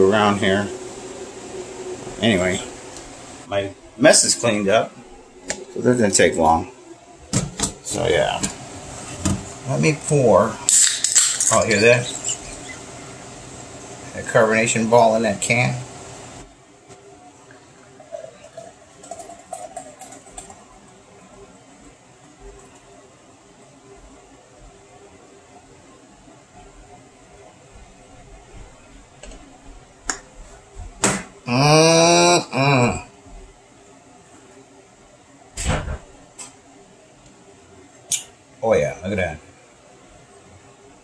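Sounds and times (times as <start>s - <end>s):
beer pouring into glass: 17.4s - 20.7s.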